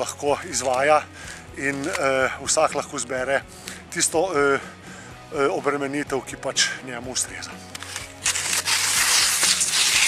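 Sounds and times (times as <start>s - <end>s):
skis crunching through snow: 7.9s - 10.0s.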